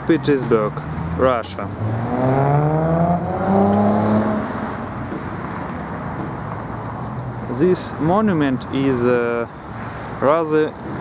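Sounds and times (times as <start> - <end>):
steady traffic noise: 0.0 - 11.0
vehicle engine accelerating: 0.8 - 6.5.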